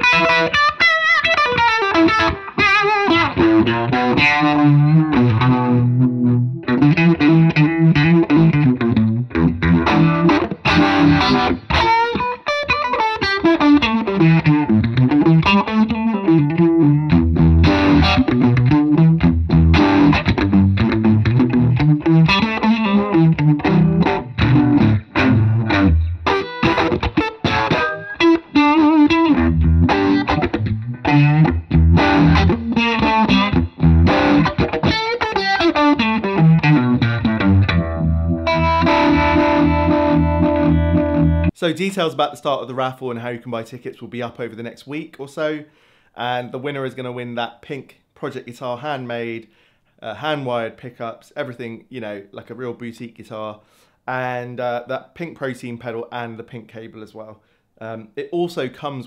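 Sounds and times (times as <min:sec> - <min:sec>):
overdriven electric guitar lead: 0:00.0 - 0:41.6.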